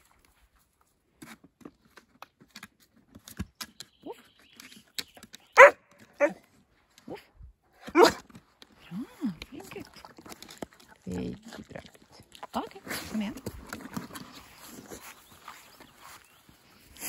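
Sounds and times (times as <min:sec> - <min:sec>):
dog barking: 0:05.6 - 0:06.4, 0:07.9 - 0:08.2.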